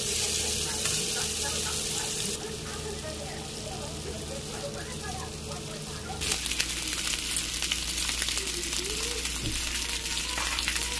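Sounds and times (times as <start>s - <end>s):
fish frying in hot oil: 0.0s - 10.9s
oil crackling and popping: 6.2s - 10.9s.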